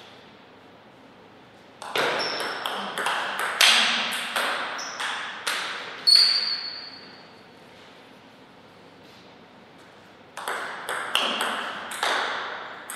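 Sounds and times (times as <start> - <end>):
ball bouncing on table: 1.8 - 6.3, 10.4 - 12.9
table tennis ball strikes: 1.8 - 6.4, 10.4 - 12.9.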